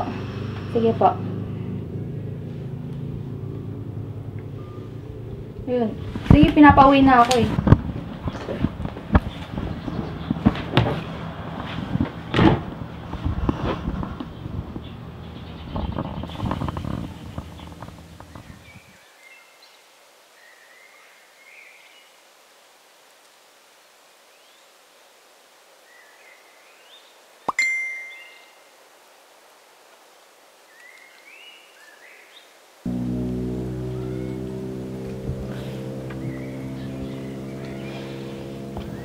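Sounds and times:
faint bird chirps: 4.6s - 5.0s, 25.9s - 28.8s
phone notification ping: 27.5s - 28.5s
low sound: 32.9s - 39.0s.

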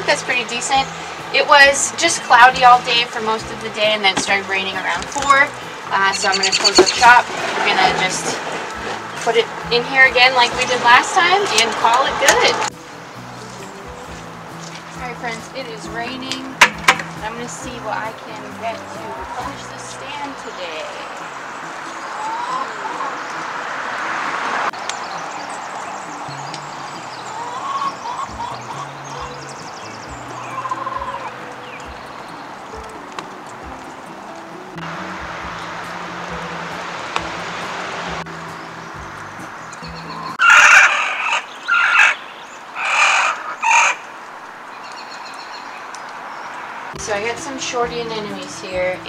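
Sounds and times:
chickens calling: 0.0s - 13.3s, 16.7s - 34.5s, 38.6s - 47.5s
background music with soft beat: 0.0s - 20.8s, 24.8s - 40.4s.

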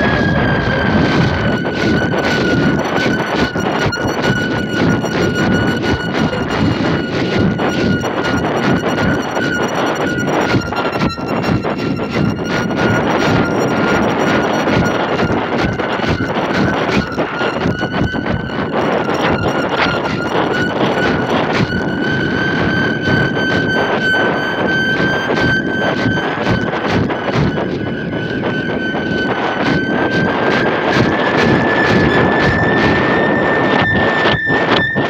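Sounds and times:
high whistle rising in pitch: 0.0s - 35.0s
wind rushing over microphone: 0.0s - 35.0s.

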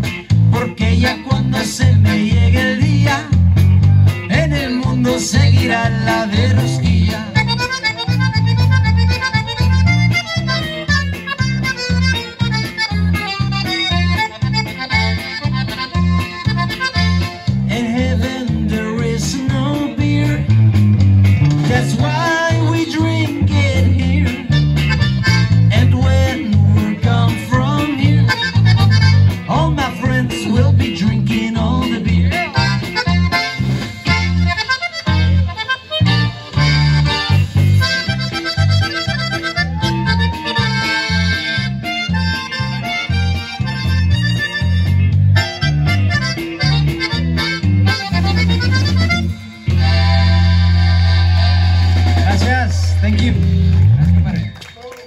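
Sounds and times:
accordion melody: 0.0s - 54.2s
live band playing dance music: 0.0s - 55.0s.

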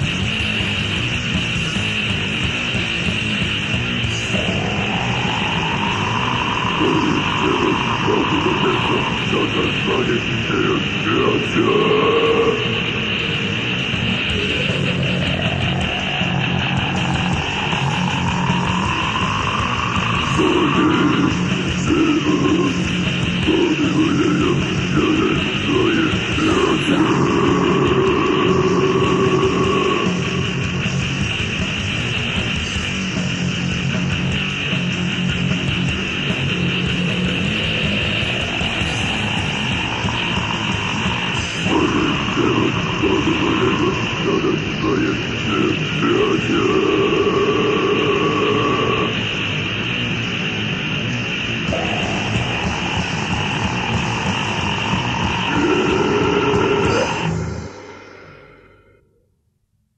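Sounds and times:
distorted extreme metal music: 0.0s - 59.0s.

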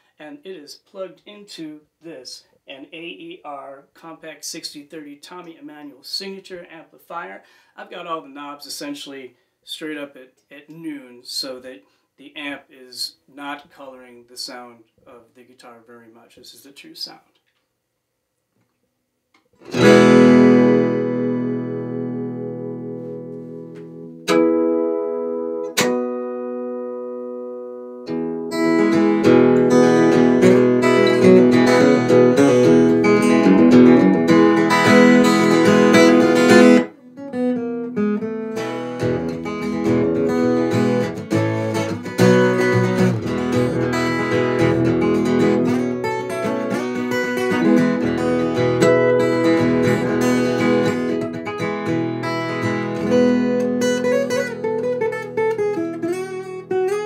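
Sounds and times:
acoustic guitar strummed and picked: 19.6s - 57.0s.

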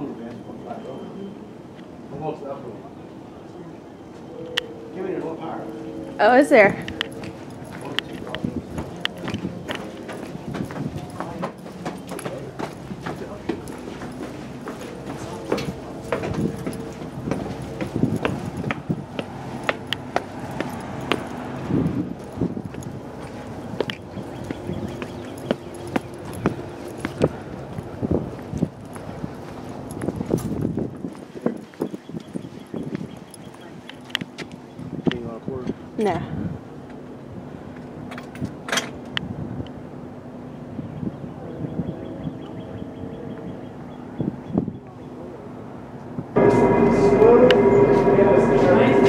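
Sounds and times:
footsteps on hard floor: 7.2s - 21.3s.

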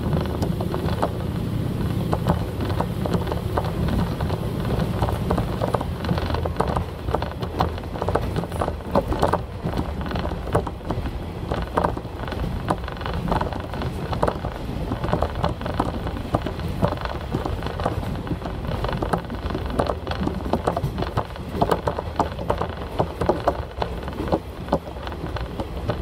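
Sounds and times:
train low rumble: 0.0s - 26.0s
wheels clicking on rails: 0.0s - 26.0s.

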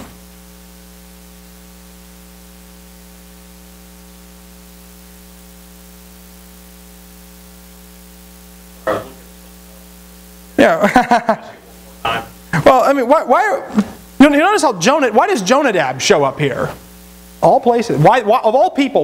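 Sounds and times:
electrical mains hum: 0.0s - 19.0s
short voice sound: 8.8s - 9.3s.

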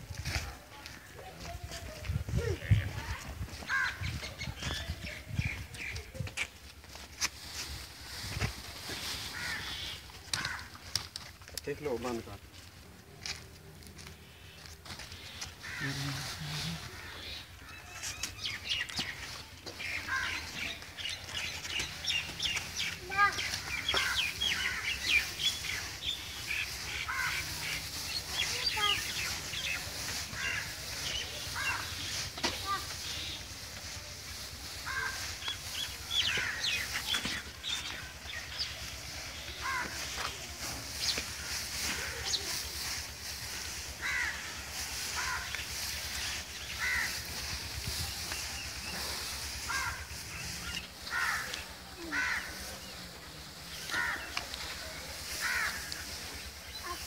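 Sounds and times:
rustle of straw mixed by hand: 0.0s - 57.0s
birds chirping: 14.0s - 57.0s.

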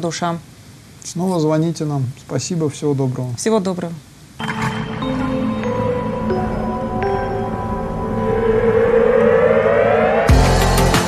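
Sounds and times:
synthesizer riser: 5.0s - 11.0s.

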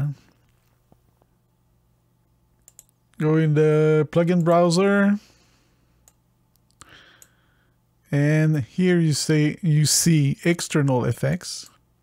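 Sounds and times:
person speaking: 0.0s - 0.4s, 3.1s - 5.4s, 8.1s - 11.8s
computer mouse clicks: 2.6s - 3.0s.

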